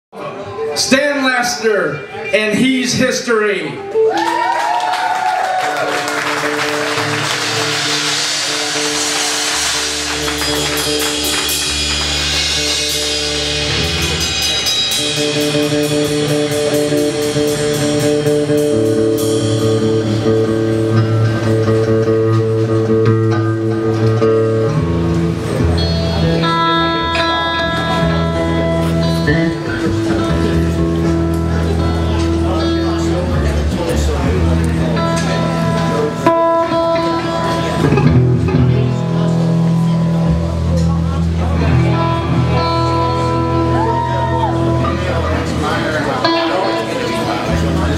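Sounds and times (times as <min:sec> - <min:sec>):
bass guitar: 0:00.6 - 0:47.9
drums: 0:00.8 - 0:47.9
electric guitar sustained notes: 0:03.2 - 0:47.9
rapid cymbal strokes: 0:06.8 - 0:20.1.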